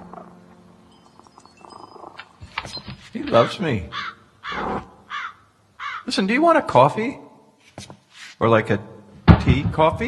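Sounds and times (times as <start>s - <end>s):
crow cawing: 3.3s - 6.1s.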